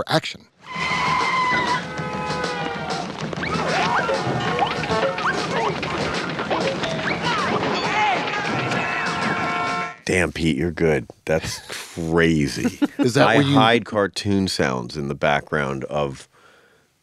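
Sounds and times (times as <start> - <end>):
cartoon whistling slides: 0.6 - 1.8
crashes and impacts: 3.0 - 9.8.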